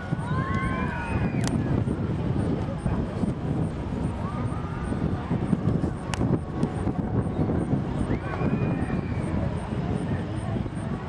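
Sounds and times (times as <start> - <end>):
faint distant voices: 0.0 - 11.0
low rumble: 0.0 - 11.0.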